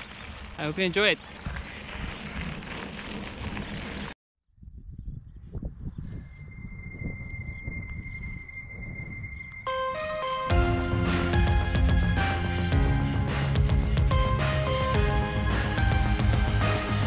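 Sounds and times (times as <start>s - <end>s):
wind rumbling on microphone: 0.0s - 9.6s
intro music: 6.4s - 17.0s.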